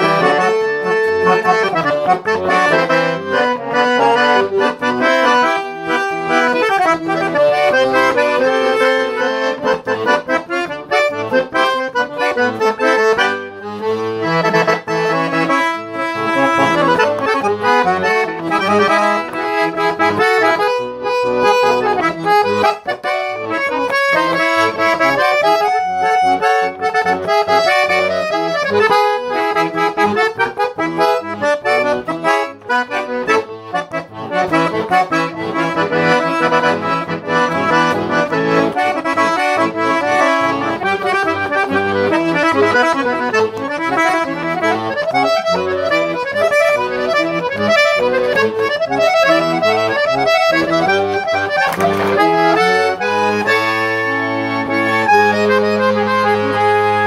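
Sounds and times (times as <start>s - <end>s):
accordion melody with bass chords: 0.0s - 57.0s.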